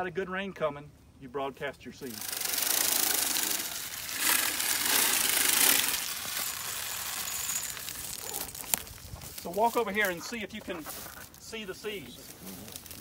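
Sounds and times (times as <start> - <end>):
seed spreader whirring rattle: 2.0 - 9.6.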